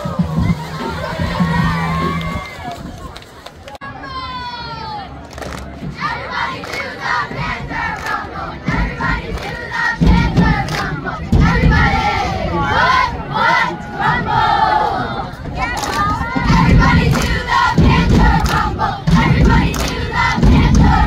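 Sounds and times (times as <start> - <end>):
low thuds: 8.6 - 12.4, 16.1 - 21.0.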